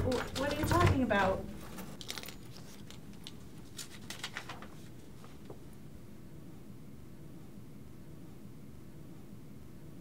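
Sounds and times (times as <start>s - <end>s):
paper rustling: 0.0s - 5.7s
low room hum: 0.0s - 10.0s.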